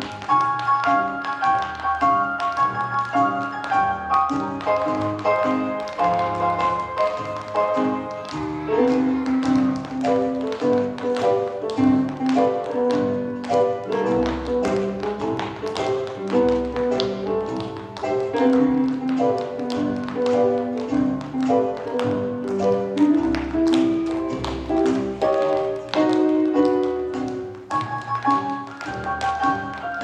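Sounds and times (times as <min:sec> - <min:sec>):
tap shoes clicking on stage: 0:00.0 - 0:30.0.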